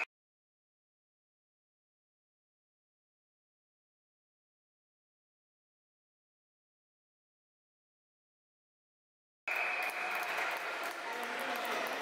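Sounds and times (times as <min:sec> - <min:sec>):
blurred voices in sports hall: 0:09.5 - 0:12.0.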